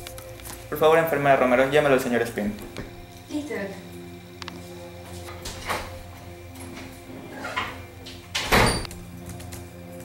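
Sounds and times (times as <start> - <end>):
background music: 0.0 - 10.0
door opening and shutting: 5.3 - 6.0, 6.6 - 9.0.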